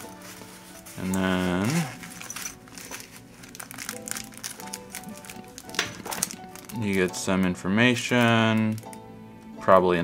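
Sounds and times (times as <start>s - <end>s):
plastic wrapping crinkling: 0.0s - 9.1s
soft background music: 0.0s - 10.0s.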